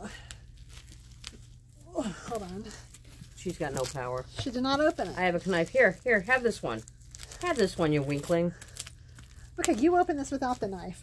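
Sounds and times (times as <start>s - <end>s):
low steady hum: 0.0s - 11.0s
plastic wrapper crinkling: 0.0s - 11.0s.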